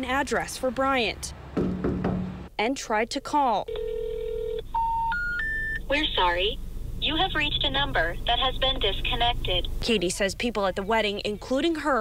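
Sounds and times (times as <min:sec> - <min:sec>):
steady phone tone: 0:03.7 - 0:05.9.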